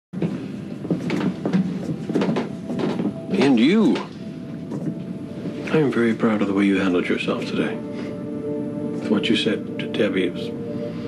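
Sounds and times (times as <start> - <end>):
light knocks and clatter: 0.2 - 4.1
steady low hum: 0.2 - 11.0.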